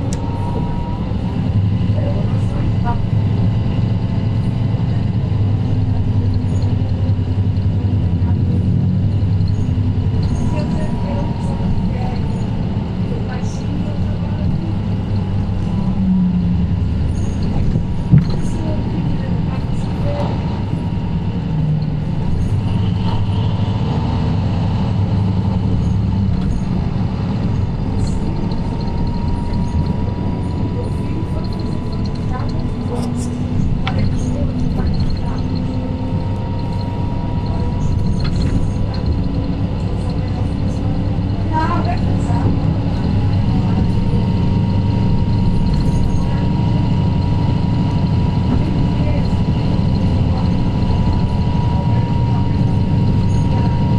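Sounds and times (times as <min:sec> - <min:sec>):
bus diesel engine drone: 0:00.0 - 0:53.9.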